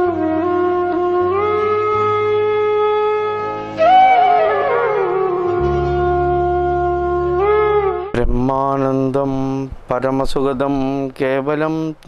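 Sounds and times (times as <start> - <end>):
man chanting: 8.1 - 12.0.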